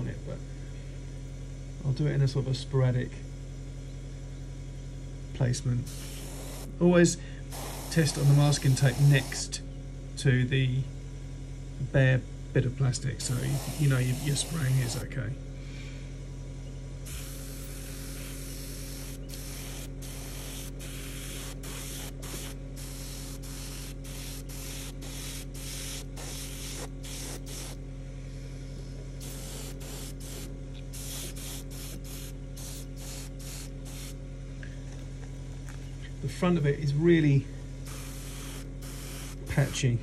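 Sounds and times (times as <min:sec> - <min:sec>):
steady low hum: 0:00.0 - 0:40.0
airbrush spraying bursts: 0:05.9 - 0:06.8, 0:07.5 - 0:09.6, 0:13.2 - 0:15.1, 0:17.1 - 0:34.2, 0:37.8 - 0:40.0.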